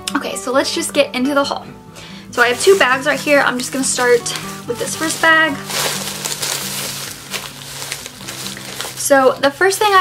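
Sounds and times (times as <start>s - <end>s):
background music: 0.0s - 10.0s
plastic bag rustling: 2.3s - 10.0s.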